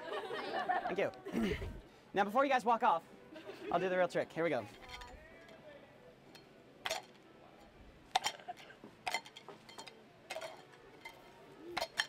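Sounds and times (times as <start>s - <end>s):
metal cup clinking: 4.7s - 5.6s, 6.3s - 12.0s.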